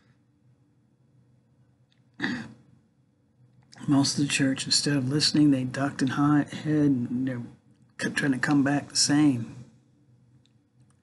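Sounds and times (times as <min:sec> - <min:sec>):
man clearing his throat: 0:02.2 - 0:02.6.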